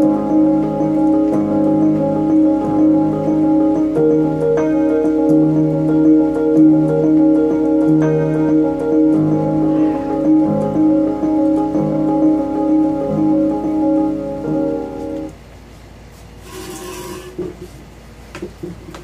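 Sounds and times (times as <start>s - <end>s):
electric piano chords: 0.0s - 15.5s.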